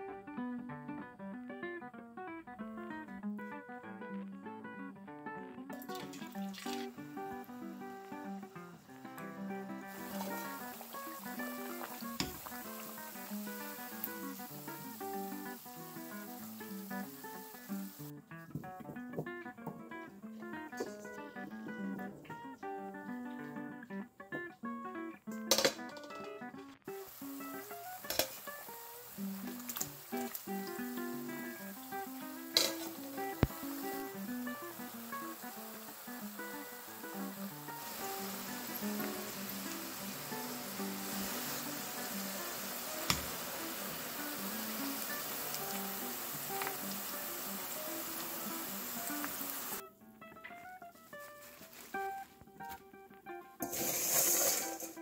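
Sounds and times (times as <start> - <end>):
acoustic guitar music: 0.0 - 55.0
oil sizzling with frying fries: 5.7 - 18.2, 25.5 - 49.8, 53.6 - 55.0.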